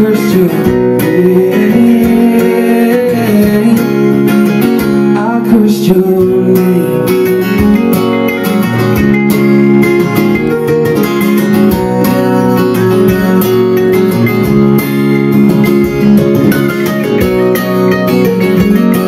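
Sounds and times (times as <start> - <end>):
acoustic guitar strumming: 0.0 - 19.0
mandolin picking a melody: 0.0 - 19.0.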